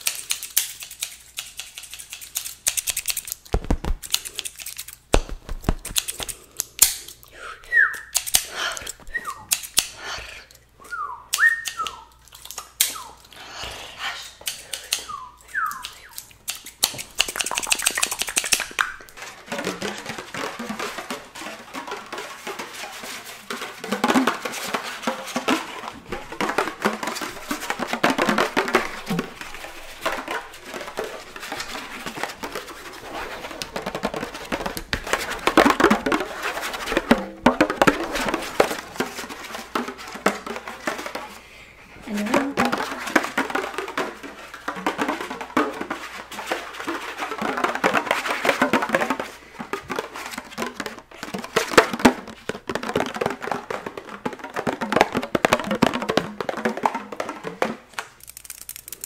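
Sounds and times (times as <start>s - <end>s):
fingertips tapping toy drums: 0.0s - 7.1s, 7.9s - 10.2s, 11.3s - 59.0s.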